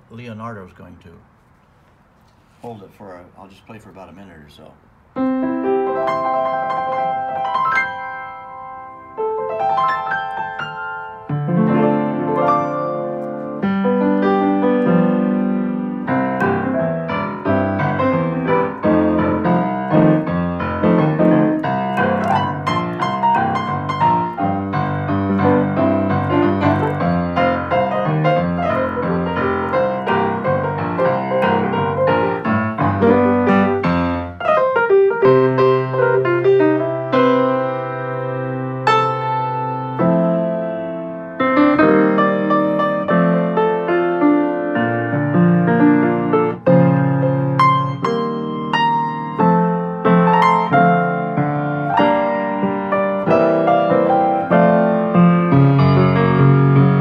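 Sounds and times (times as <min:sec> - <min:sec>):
piano chords and melody: 0:05.0 - 0:57.0.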